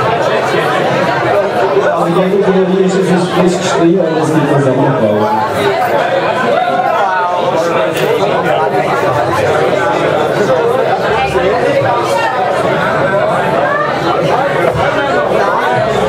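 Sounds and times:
crowd chatter: 0.0 - 16.0.

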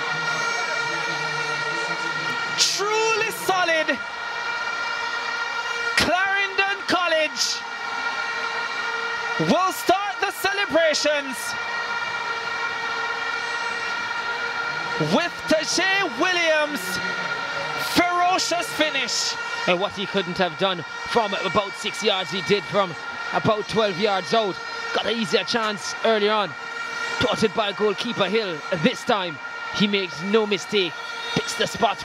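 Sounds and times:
horns blowing held notes: 0.0 - 32.0
stadium crowd noise: 0.0 - 32.0.

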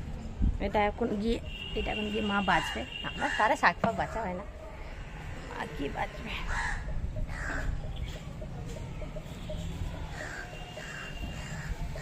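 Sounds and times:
bird calling: 6.5 - 12.0.

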